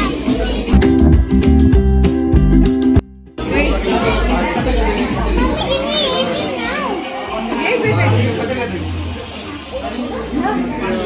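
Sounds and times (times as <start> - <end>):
background music with low beat: 0.4 - 5.6
children calling out excitedly: 5.1 - 10.9.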